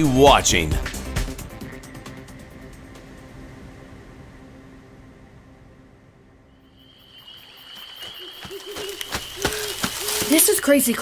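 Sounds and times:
high insect trill: 6.5 - 11.0.

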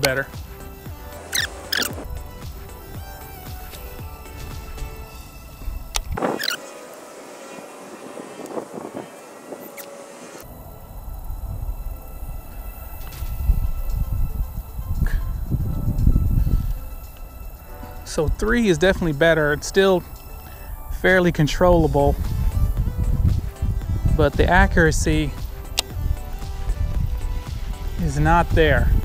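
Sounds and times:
background music sustained tones: 0.0 - 29.0
wind rumble on microphone: 1.9 - 29.0.

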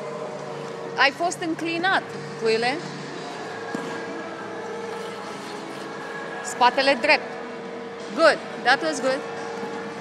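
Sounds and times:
ice rink hum: 0.0 - 10.0.

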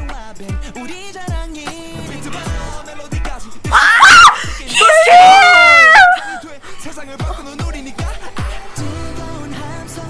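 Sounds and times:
young women screaming: 3.7 - 6.4.

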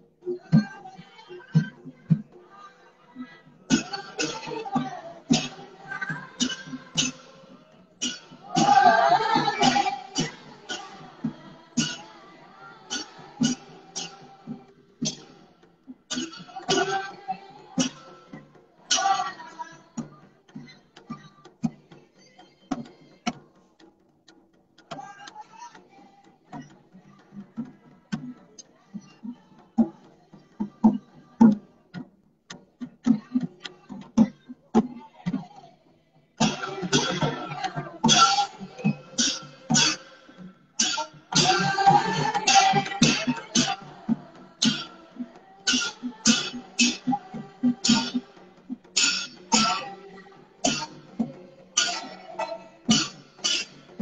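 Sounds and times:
drum beats: 0.0 - 54.0
folk dance music: 8.4 - 13.6, 36.4 - 54.0.

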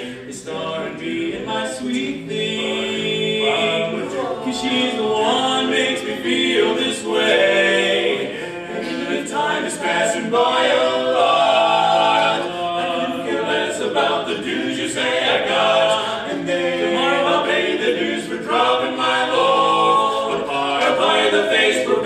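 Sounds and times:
male quartet singing a cappella: 0.0 - 22.0.

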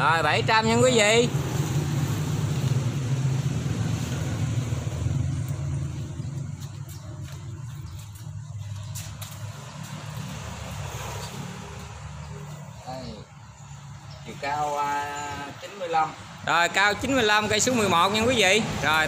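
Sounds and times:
motorbike engine passing: 0.0 - 14.0.

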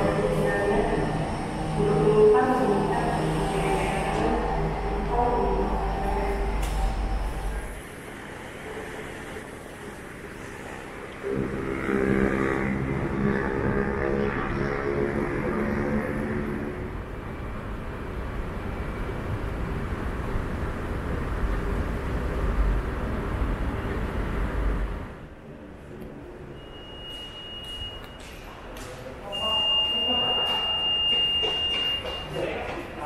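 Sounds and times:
road traffic hum: 0.0 - 26.5
engine drone: 0.0 - 26.7.

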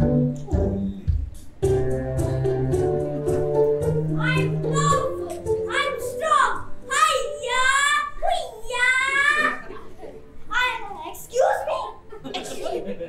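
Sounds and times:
piano music: 0.0 - 7.8.

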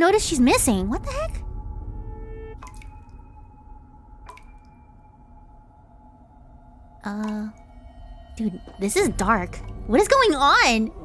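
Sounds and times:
low rumbling drone: 0.0 - 11.0
water drip plinks: 2.6 - 11.0.

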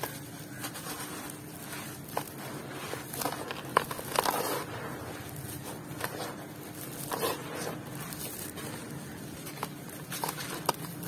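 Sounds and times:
hands raking dry cement powder: 0.0 - 11.0
sharp crunching clicks: 0.0 - 11.0.

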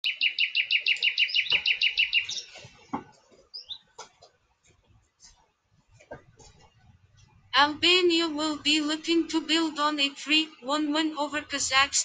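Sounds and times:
high bird-like chirps: 0.0 - 2.8.

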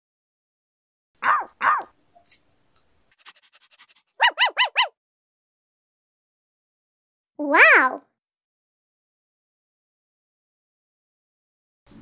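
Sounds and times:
puppy yelping: 1.2 - 1.9, 3.2 - 5.0.

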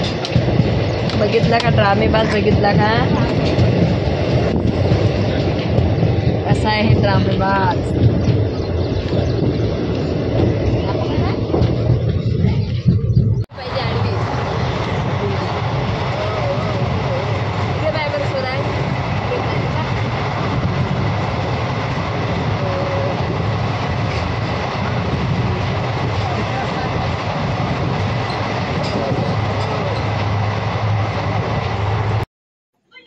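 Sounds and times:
passenger train running: 0.0 - 33.0.

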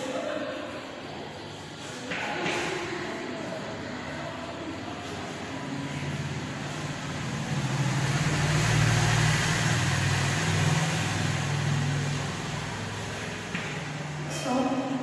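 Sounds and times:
vehicle engine passing by: 1.8 - 14.4.

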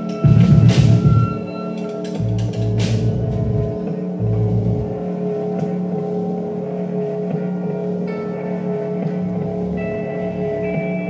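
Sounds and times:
low bass: 0.0 - 1.5, 2.2 - 11.0
electric guitars droning chord: 0.0 - 11.0.

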